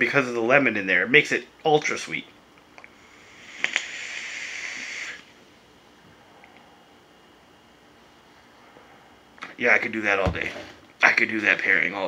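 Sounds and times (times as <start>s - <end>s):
vape hissing: 3.0s - 5.4s.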